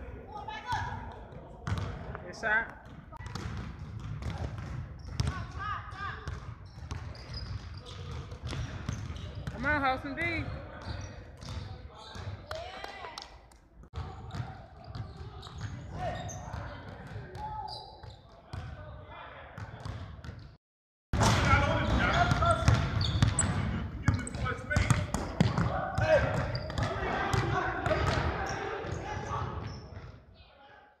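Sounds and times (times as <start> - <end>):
players' voices: 0.0 - 13.4, 21.2 - 30.9
basketballs bouncing on wood floor: 0.7 - 12.4, 21.2 - 30.1.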